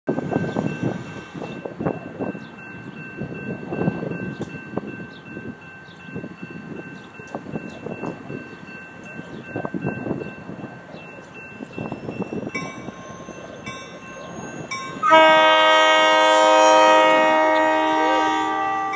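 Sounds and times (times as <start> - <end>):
railroad crossing bell ringing: 0.1 - 18.9.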